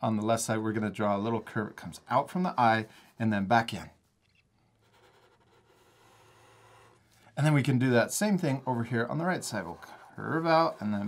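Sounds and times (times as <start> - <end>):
marker scratching on paper: 4.8 - 7.1.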